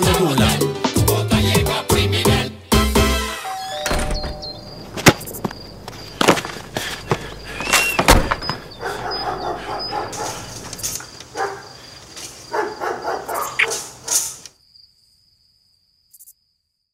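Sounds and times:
thump: 0:08.0 - 0:08.6
dog barking: 0:08.8 - 0:10.6, 0:11.3 - 0:11.8, 0:12.5 - 0:14.4.

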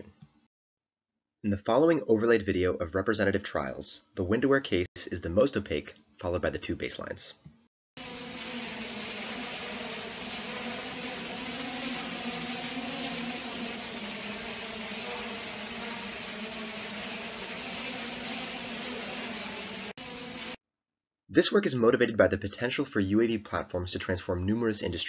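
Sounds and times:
drone propeller hum: 0:08.0 - 0:20.6
fans rushing noise: 0:08.0 - 0:20.6.

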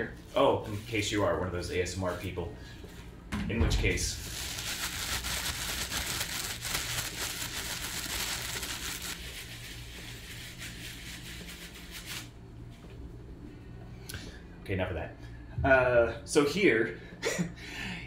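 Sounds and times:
plastic shrink wrap crinkling: 0:04.2 - 0:12.3.

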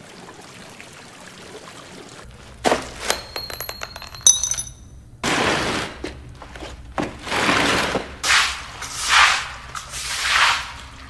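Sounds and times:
ring clinking in drainpipe: 0:02.9 - 0:05.1.

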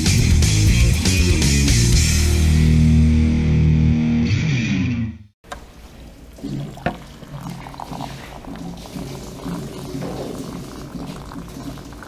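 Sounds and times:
water pouring into a mug: 0:05.9 - 0:12.0
low gurgles: 0:06.0 - 0:12.0.

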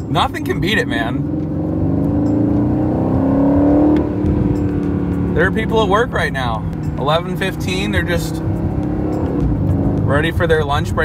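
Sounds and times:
car engine under throttle: 0:00.0 - 0:11.0.

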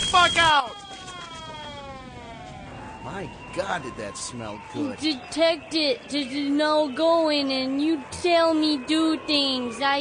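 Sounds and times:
siren wailing: 0:00.0 - 0:10.0.

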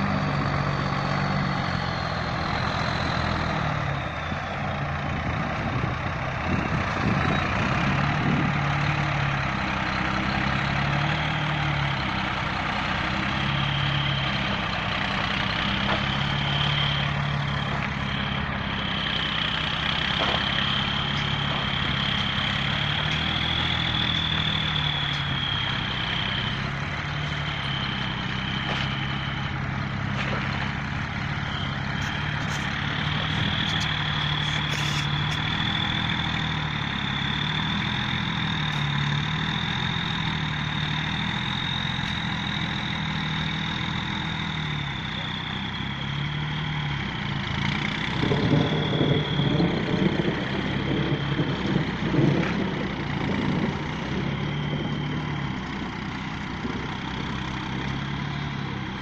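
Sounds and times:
truck engine labouring: 0:00.0 - 0:59.0
steady high whine: 0:11.8 - 0:46.2.

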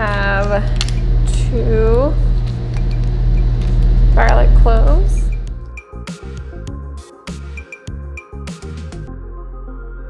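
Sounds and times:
loud low hum: 0:00.0 - 0:05.8.

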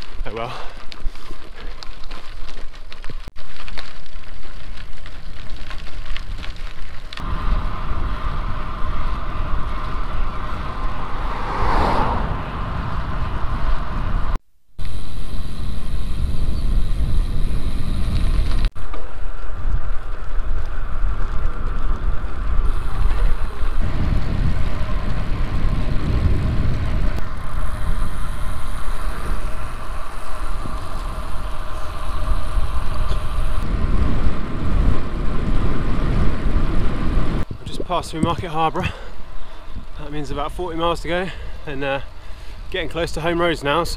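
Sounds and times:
tyre and road noise: 0:00.0 - 0:43.9
wind buffeting microphone: 0:05.6 - 0:43.9
vehicle passing: 0:07.2 - 0:14.4.

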